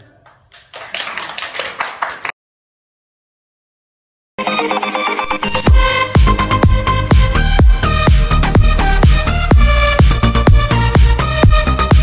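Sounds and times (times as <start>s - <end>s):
audience applauding: 0.5s - 2.4s.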